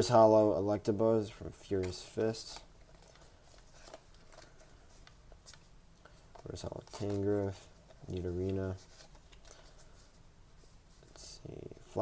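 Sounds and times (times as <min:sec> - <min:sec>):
paper cards rustling: 0:01.6 - 0:11.4.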